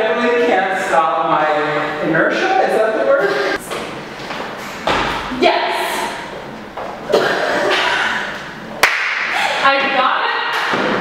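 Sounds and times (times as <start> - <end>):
people talking in echoing room: 0.0 - 11.0.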